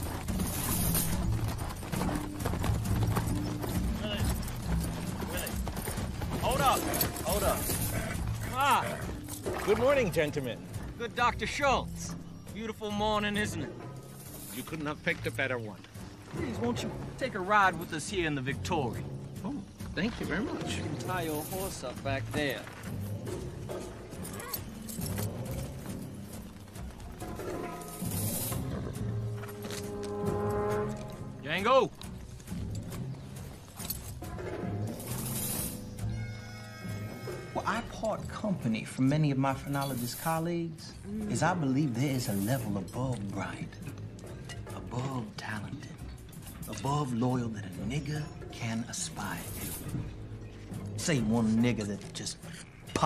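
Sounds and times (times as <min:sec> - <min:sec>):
horse hoof steps: 0:00.0 - 0:08.5, 0:22.3 - 0:30.3
horse hooves clip-clopping on dirt: 0:00.0 - 0:40.3
low held music notes: 0:00.0 - 0:52.9.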